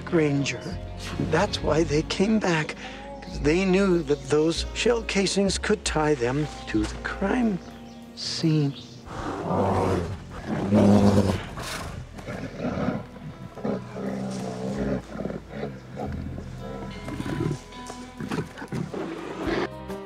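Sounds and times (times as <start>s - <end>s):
background music: 0.0s - 20.0s
bear roaring: 9.1s - 19.8s.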